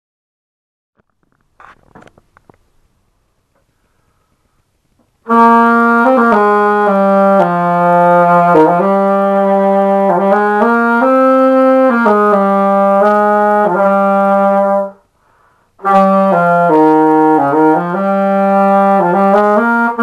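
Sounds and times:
alto saxophone playing slow phrase: 0:05.3 - 0:15.0, 0:15.8 - 0:20.0.

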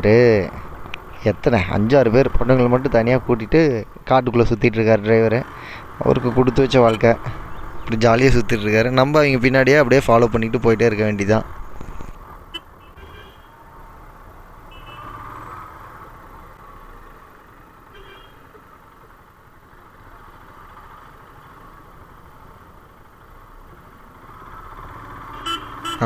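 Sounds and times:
motorcycle engine and road noise: 0:00.0 - 0:26.0.

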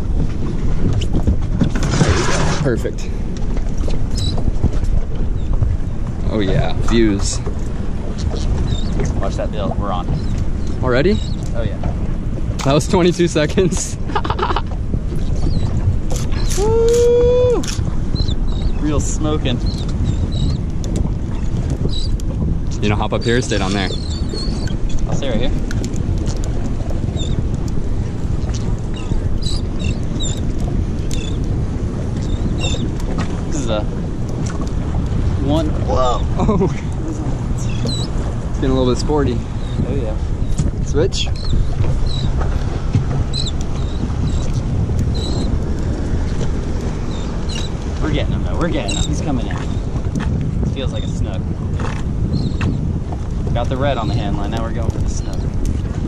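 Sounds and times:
boat outboard motors: 0:00.0 - 0:56.0
wind buffeting microphone: 0:00.0 - 0:56.0.

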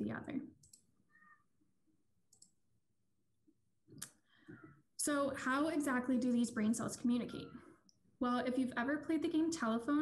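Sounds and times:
faint clicks: 0:02.3 - 0:02.6.

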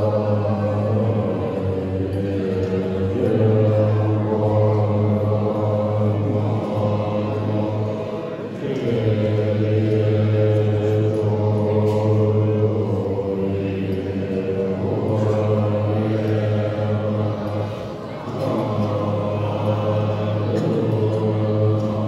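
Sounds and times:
monks chanting in unison: 0:00.0 - 0:22.0.

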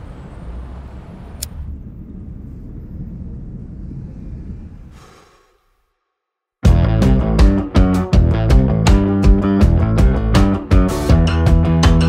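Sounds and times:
traffic rumble: 0:00.0 - 0:05.8.

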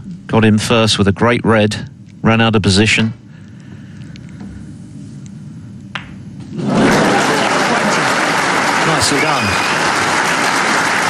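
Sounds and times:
snooker balls clicking: 0:05.9 - 0:06.2
audience applause: 0:06.6 - 0:11.0.

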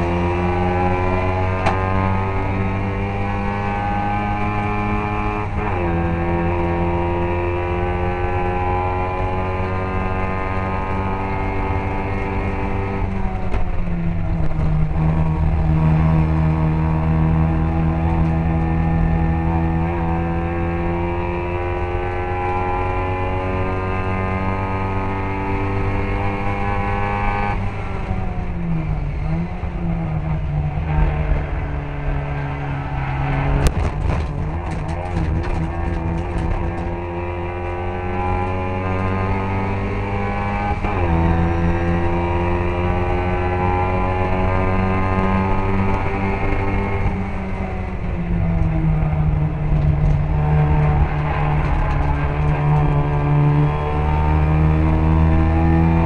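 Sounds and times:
race car engine revving hard: 0:00.0 - 0:56.0.

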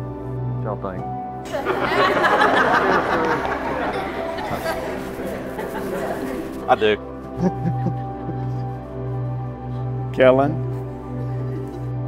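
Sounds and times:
guests chattering and laughing: 0:01.4 - 0:09.0.

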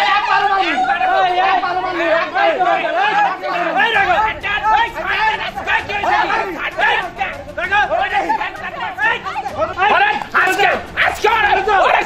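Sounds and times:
people shouting in quarrel: 0:00.0 - 0:12.0.

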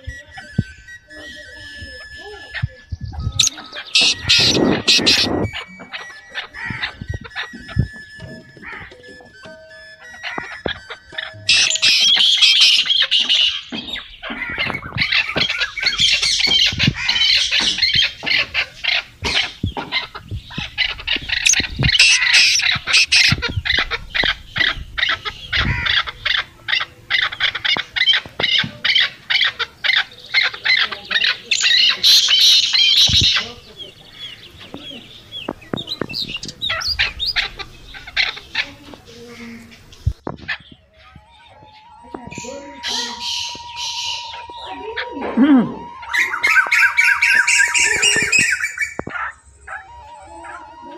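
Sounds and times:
birds chirping and squawking: 0:00.0 - 0:50.9.

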